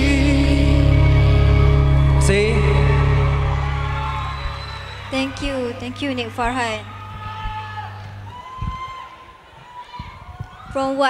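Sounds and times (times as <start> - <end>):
man singing with vibrato: 0.0 - 3.9
backing track with heavy bass: 0.0 - 8.8.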